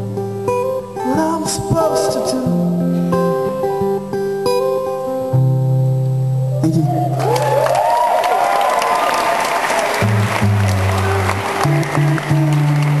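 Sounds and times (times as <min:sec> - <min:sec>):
low acoustic guitar notes: 0:00.0 - 0:07.2
crowd cheering: 0:06.6 - 0:13.0
audience applauding: 0:07.2 - 0:13.0.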